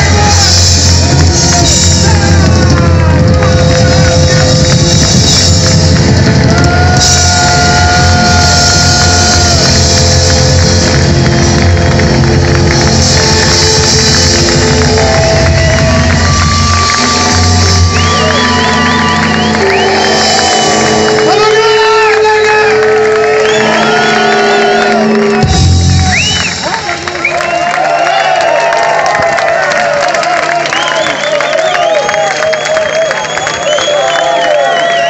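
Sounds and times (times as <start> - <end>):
electric guitar: 0.0 - 27.1
lead guitar sustained notes: 0.0 - 27.1
bass guitar: 0.0 - 27.8
drums: 0.0 - 29.7.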